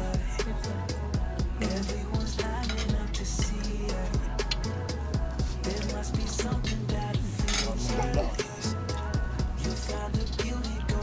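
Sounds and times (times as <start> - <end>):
pop music with steady beat: 0.0 - 11.0
fork clinking on ceramic plate: 7.4 - 7.8.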